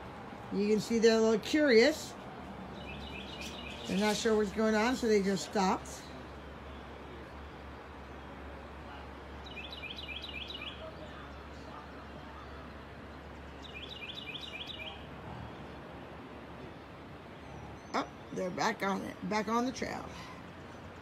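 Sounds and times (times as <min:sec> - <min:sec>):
low background noise: 0:00.0 - 0:21.0
songbird singing: 0:00.0 - 0:21.0.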